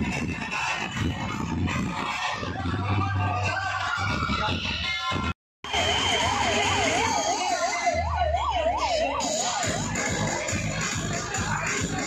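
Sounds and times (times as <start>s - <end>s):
noisy background: 0.0s - 12.0s
siren yelping: 5.7s - 12.0s.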